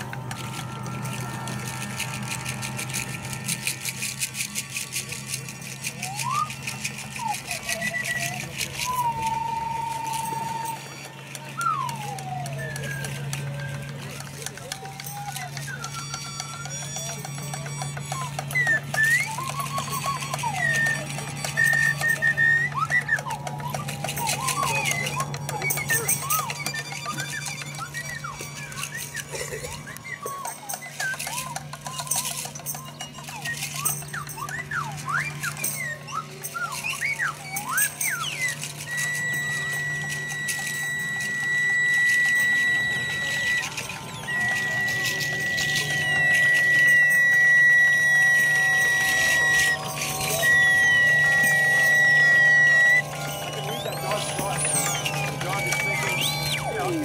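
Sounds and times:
gliding whistle-like tones: 0.0 - 57.0
steady high tone: 0.0 - 57.0.

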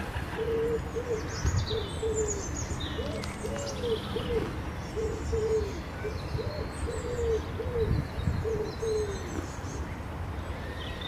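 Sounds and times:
bird cooing: 0.2 - 9.4.

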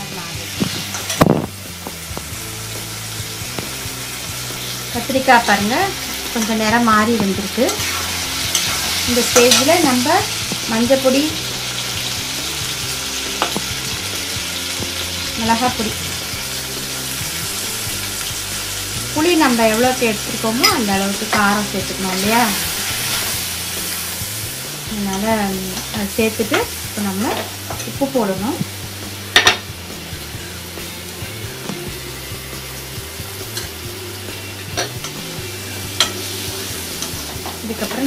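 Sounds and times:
vegetables sizzling in oil: 0.0 - 38.0
spoon clinking against pan: 20.6 - 21.4.

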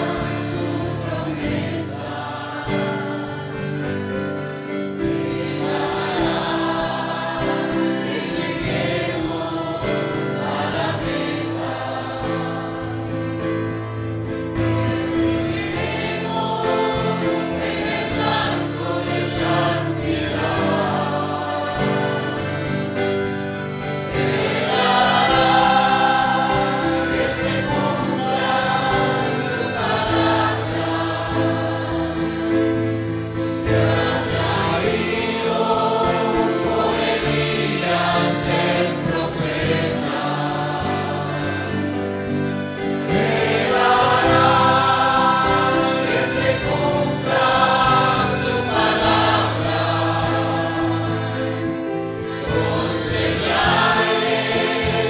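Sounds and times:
congregation singing: 0.0 - 55.0.

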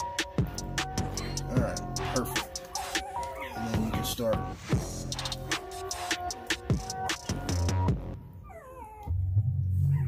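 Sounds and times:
background music with deep bass: 0.0 - 10.0
puppy whining: 1.2 - 10.0.

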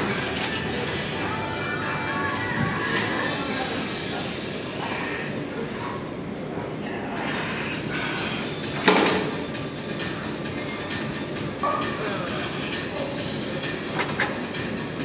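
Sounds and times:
weight room background noise: 0.0 - 15.0.

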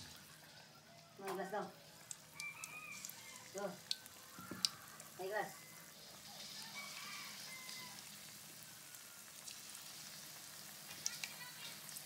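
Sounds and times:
chicken deep-frying in oil: 0.0 - 12.0.

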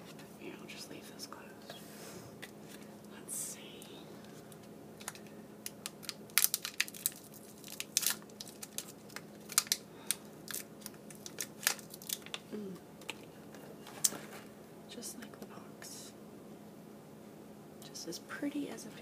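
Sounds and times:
foil wrapper crinkling: 4.3 - 13.3.

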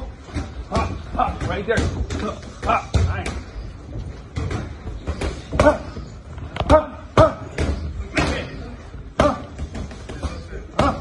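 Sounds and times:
boxing gloves striking mitts: 4.3 - 6.0.

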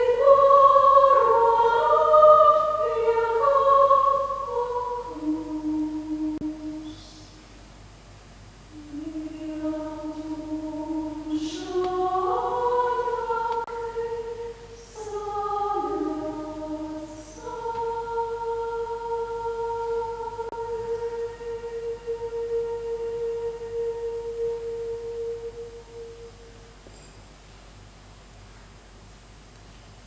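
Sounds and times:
choir singing: 0.0 - 7.2, 8.8 - 26.5.

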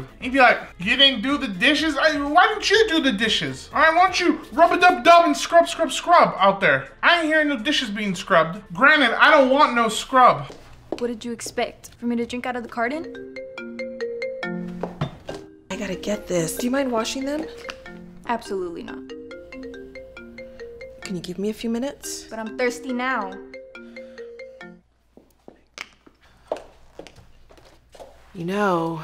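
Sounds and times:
footsteps on hard floor: 10.4 - 12.9, 14.6 - 18.1, 25.1 - 28.4
phone ringtone melody: 12.9 - 24.8.

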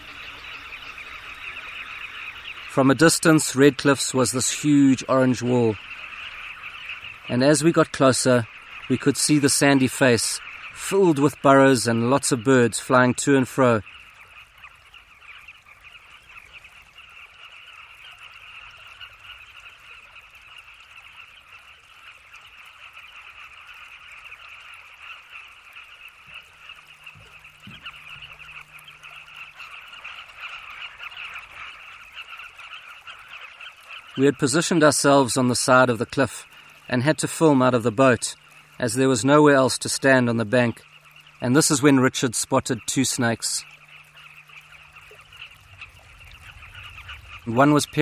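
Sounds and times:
chorus of bird calls: 0.0 - 48.0.

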